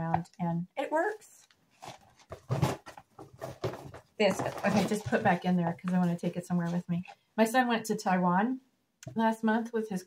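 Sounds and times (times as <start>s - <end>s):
rustling and crinkling packing: 1.4s - 7.2s.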